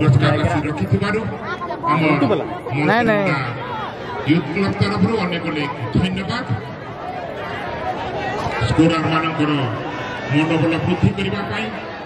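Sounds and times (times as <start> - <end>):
crowd chatter: 0.0 - 12.0
voices talking: 1.3 - 5.9.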